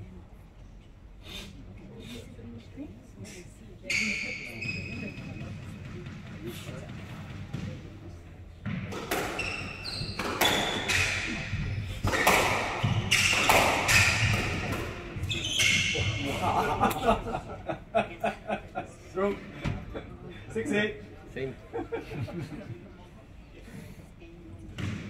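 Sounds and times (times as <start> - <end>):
shoes squeaking on wooden floor: 3.9 - 5.7, 9.3 - 16.3
squash ball struck by rackets: 8.6 - 16.1, 24.8 - 25.0.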